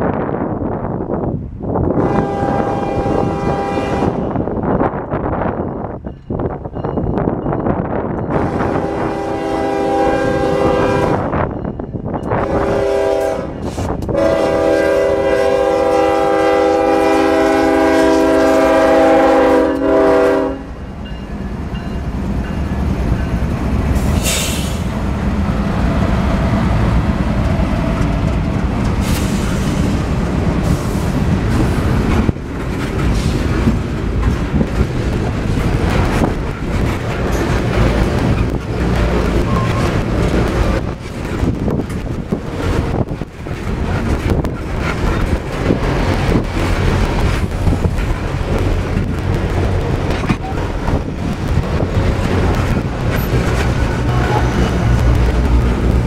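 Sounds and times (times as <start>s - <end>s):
locomotive horn blasts: 2.0s - 4.4s, 8.3s - 11.4s, 12.3s - 20.8s
wheels on rails: 21.0s - 56.0s.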